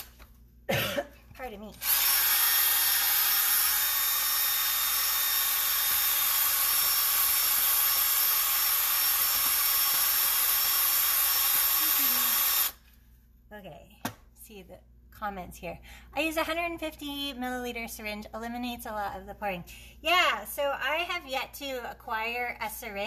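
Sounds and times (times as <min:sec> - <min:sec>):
drill with paddle mixer running: 0:01.8 - 0:12.8.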